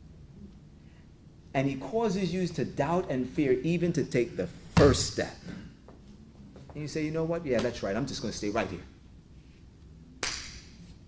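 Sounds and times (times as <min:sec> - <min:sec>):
sharp smack: 0:10.2 - 0:10.8.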